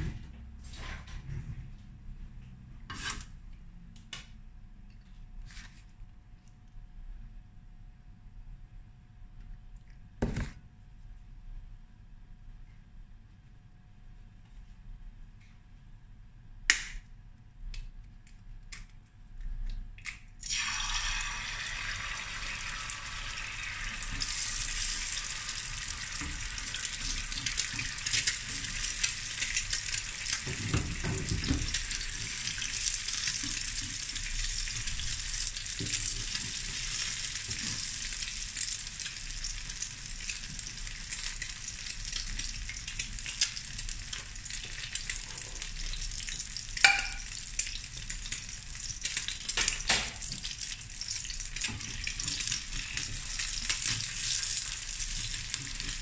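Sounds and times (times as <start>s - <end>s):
egg sizzling in hot oil: 20.4s - 56.0s
metal spatula clinking on pan: 46.8s - 47.3s.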